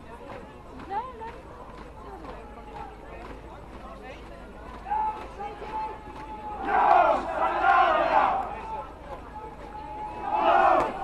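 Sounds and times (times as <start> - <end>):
murmur of street crowd: 0.0 - 11.0
group of voices shouting: 6.2 - 8.7, 10.0 - 11.0.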